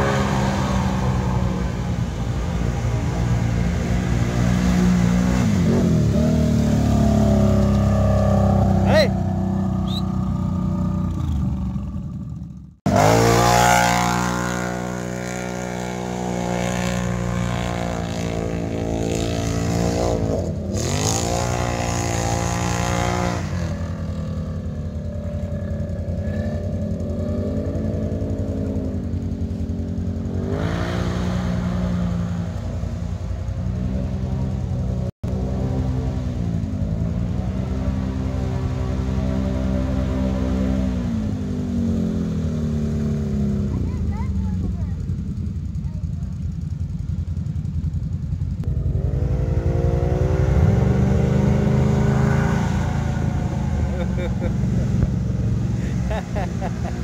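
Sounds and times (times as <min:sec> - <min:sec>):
atv engines revving: 0:00.0 - 0:57.0.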